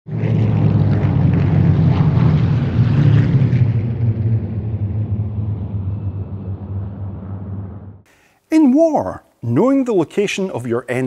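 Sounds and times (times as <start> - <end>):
propeller aircraft engines droning: 0.1 - 8.0.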